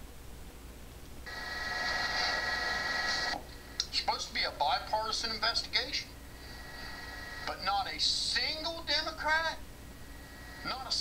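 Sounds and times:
constant low hum: 0.0 - 11.0
steady electronic tone: 1.3 - 3.4.

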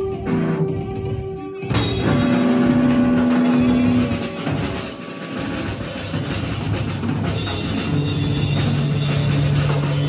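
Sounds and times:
distorted electric guitar: 0.0 - 10.0
loud improvised rock band: 0.0 - 10.0.

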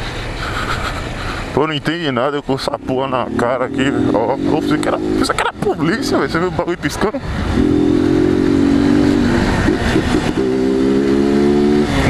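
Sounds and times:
motorcycle engine running: 2.6 - 12.0
wind noise: 7.1 - 12.0.

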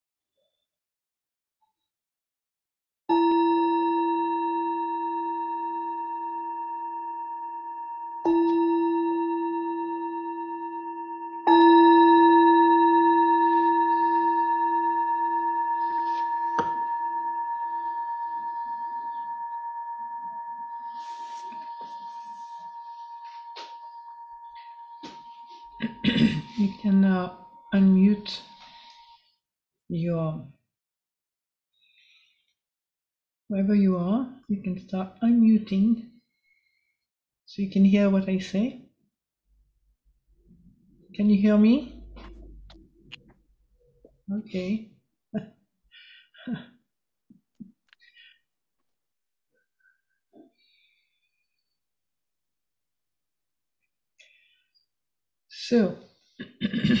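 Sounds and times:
singing bowl bell ringing: 3.1 - 29.2.

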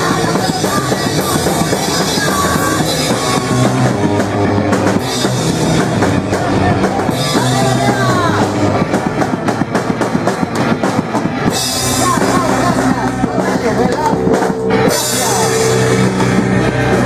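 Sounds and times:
fast dense drumming: 0.0 - 17.0
punk rock band playing: 0.0 - 17.0.

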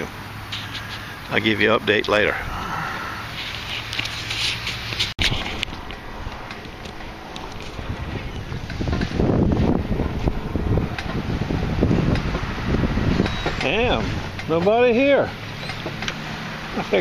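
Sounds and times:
wind buffeting microphone: 5.2 - 14.8.

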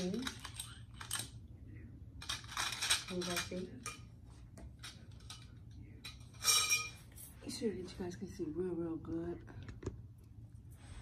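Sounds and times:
metal tubes clinking and rattling: 0.0 - 1.4, 2.2 - 7.3.

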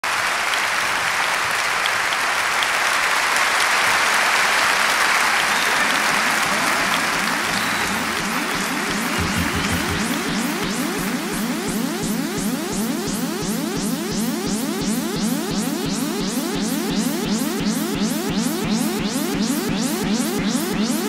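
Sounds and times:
audience applauding: 0.0 - 12.2
synthesizer rising sweeps: 6.4 - 21.0.

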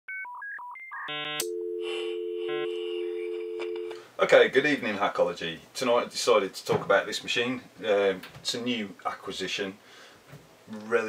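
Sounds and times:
steady low telephone tone: 1.1 - 4.0
telephone keypad tones: 1.4 - 3.9.

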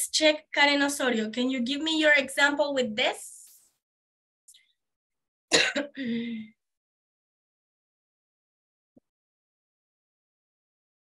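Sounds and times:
person coughing: 5.5 - 6.3.

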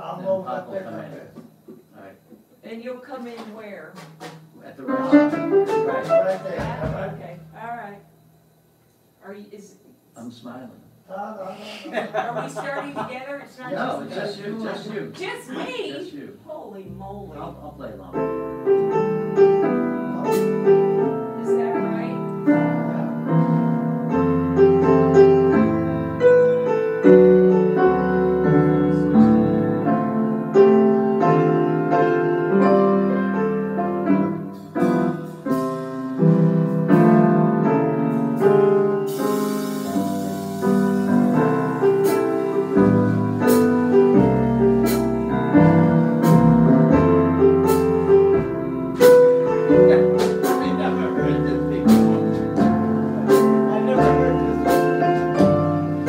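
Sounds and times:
grand piano slow tune: 4.8 - 8.3, 16.9 - 56.0
electric bass low notes: 16.8 - 56.0.

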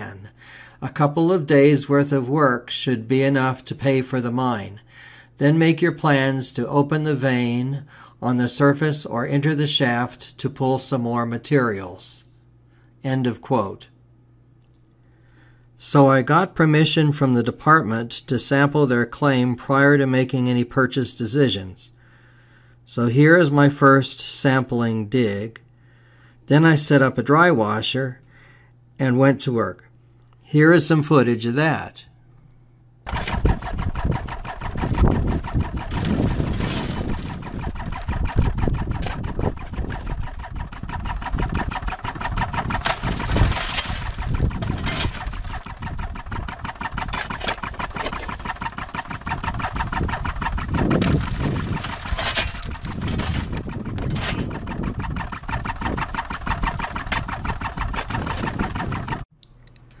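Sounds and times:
dry washer mechanical chatter: 33.1 - 59.2
gravel rattling onto screen: 33.1 - 59.2.

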